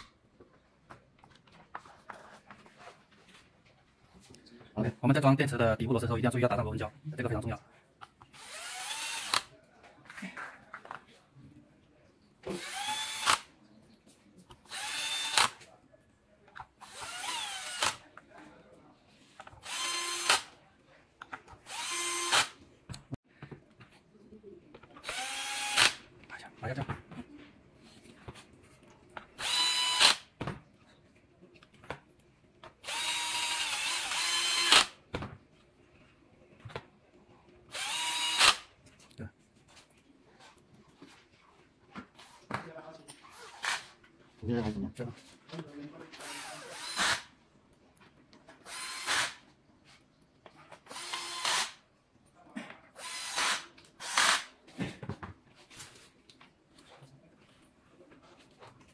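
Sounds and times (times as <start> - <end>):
electric screwdriver whining: 8.4 - 9.5, 12.6 - 13.4, 19.6 - 20.5, 21.7 - 22.5, 25.0 - 26.0, 29.4 - 30.2, 32.8 - 34.9, 37.7 - 38.6, 48.7 - 49.4, 50.9 - 51.8, 53.0 - 54.5.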